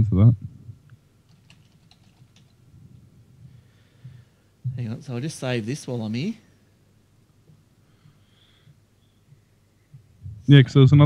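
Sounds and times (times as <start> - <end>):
keyboard typing: 1.3 - 2.6.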